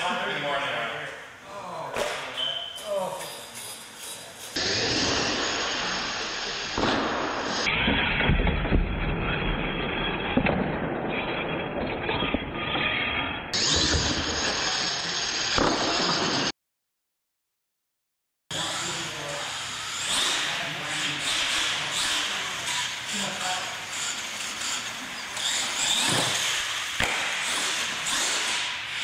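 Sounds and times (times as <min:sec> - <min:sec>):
voices: 0:00.0 - 0:04.6, 0:18.5 - 0:25.3
rc monster truck din: 0:03.2 - 0:16.5, 0:18.5 - 0:29.0.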